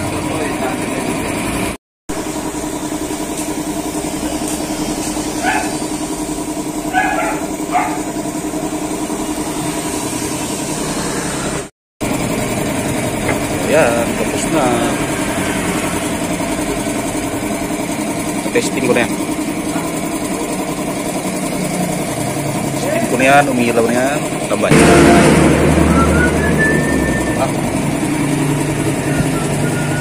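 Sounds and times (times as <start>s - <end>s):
engine idling: 0.0s - 30.0s.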